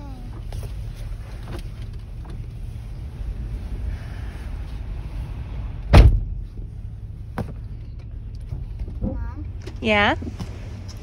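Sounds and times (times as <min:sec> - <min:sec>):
steady low rumble: 0:00.0 - 0:11.0
car door slamming: 0:05.9 - 0:06.4.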